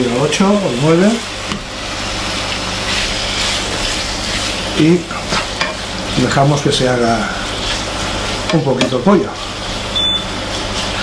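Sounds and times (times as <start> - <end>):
chicken sizzling in frying pan: 0.0 - 11.0.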